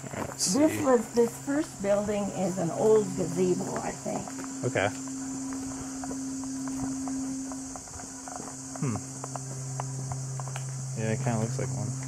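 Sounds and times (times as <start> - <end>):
faint footsteps: 0.0 - 12.0
high insect drone: 0.0 - 12.0
low hum: 0.0 - 12.0.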